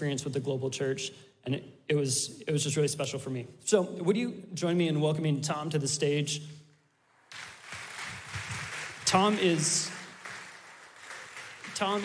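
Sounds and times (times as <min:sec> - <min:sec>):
congregation applauding: 0:07.0 - 0:12.0.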